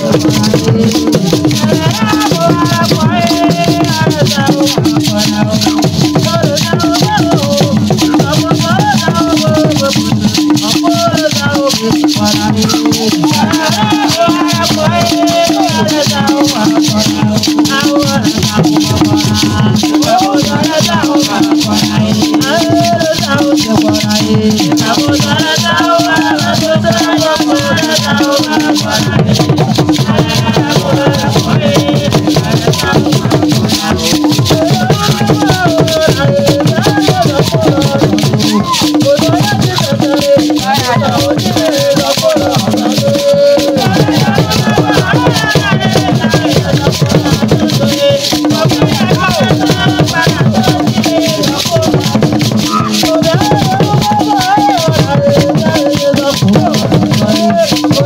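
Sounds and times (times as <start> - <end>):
shaken rattles: 0.0 - 58.0
traditional drumming: 0.0 - 58.0
voices singing: 0.0 - 58.0.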